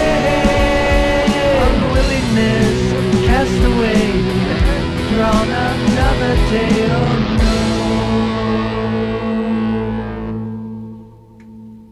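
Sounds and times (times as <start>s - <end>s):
distorted electric guitar chord: 0.0s - 11.9s.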